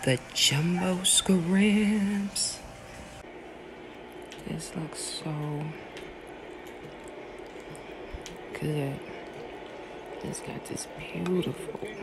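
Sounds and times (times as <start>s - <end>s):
faint clicks and ticks: 5.5s - 8.5s.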